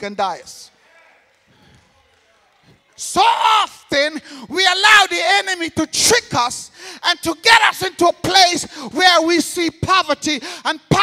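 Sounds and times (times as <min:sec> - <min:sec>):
spoken word echoing in hall: 0:00.0 - 0:11.0.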